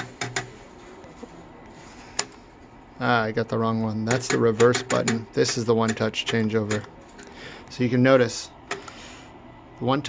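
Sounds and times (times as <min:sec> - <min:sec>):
faint machine hum: 0:00.0 - 0:10.0.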